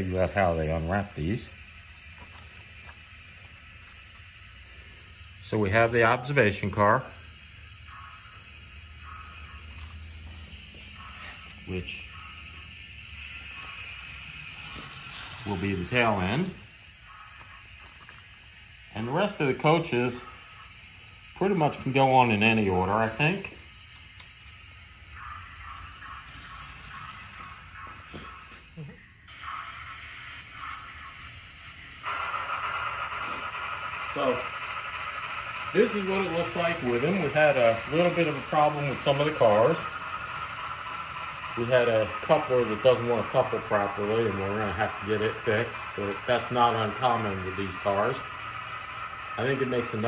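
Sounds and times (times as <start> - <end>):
model train running: 0.0 - 50.0.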